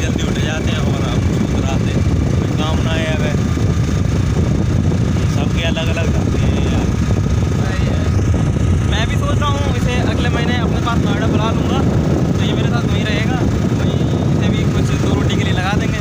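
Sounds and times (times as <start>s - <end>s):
men talking: 0.0s - 16.0s
motorcycle engine noise: 0.0s - 16.0s
wind rumble on microphone: 0.0s - 16.0s.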